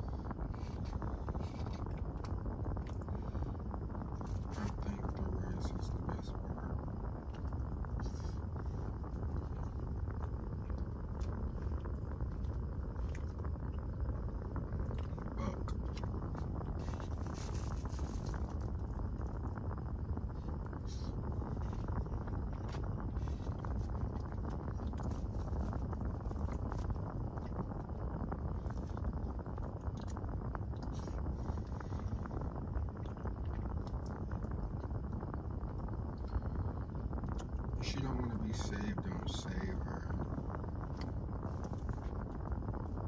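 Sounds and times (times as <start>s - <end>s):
small clicks and rustles: 14.8s - 19.4s.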